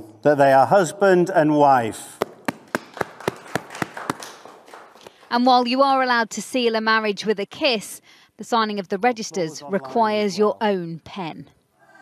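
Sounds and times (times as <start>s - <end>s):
people clapping: 2.2s - 5.4s.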